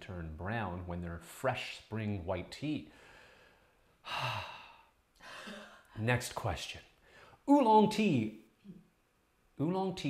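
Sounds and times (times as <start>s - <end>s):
person sighing: 4.0s - 5.9s.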